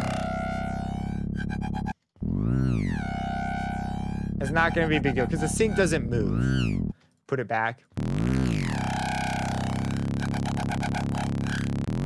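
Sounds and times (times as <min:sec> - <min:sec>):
gritty synth bass notes: 0:00.0 - 0:07.0, 0:08.0 - 0:12.0.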